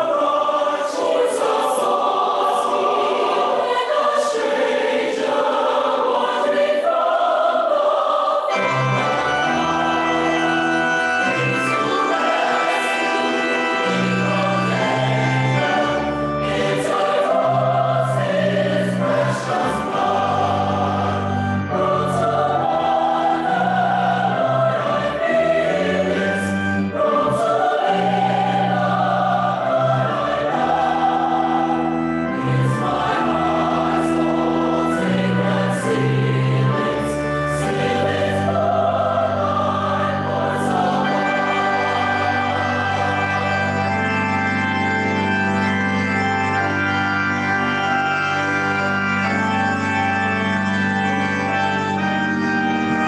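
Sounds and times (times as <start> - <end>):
mixed choir singing in harmony: 0.0 - 49.6.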